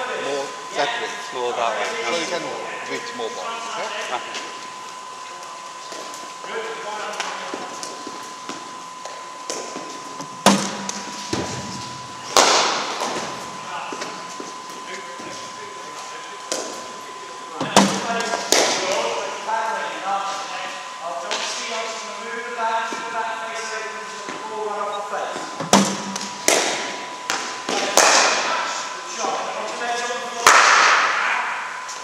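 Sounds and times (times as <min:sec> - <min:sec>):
voices talking: 0:00.0 - 0:31.7.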